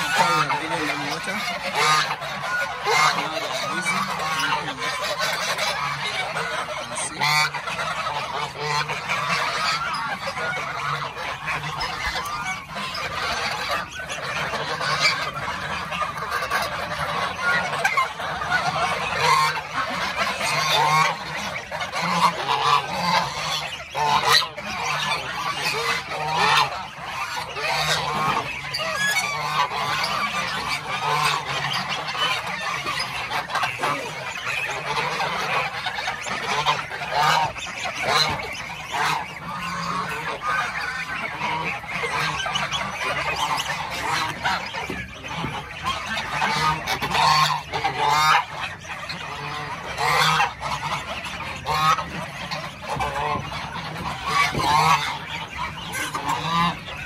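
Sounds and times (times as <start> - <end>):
geese honking: 0.0 - 57.0.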